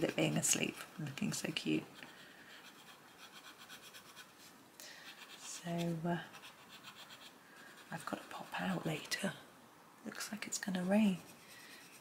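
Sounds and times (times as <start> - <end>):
coloured pencil scratching on paper: 0.0 - 4.3, 5.0 - 9.0, 10.4 - 12.0.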